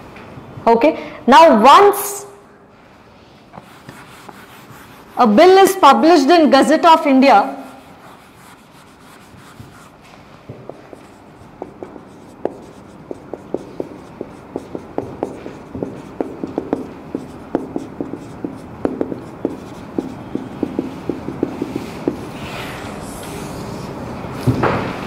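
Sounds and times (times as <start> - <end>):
marker writing on whiteboard: 3.5 - 23.4.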